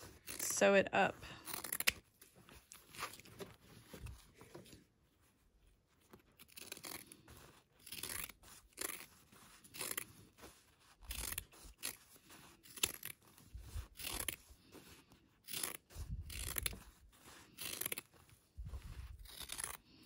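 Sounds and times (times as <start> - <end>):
scissors snipping fabric: 0.0 - 0.6, 1.4 - 3.3, 6.3 - 20.0.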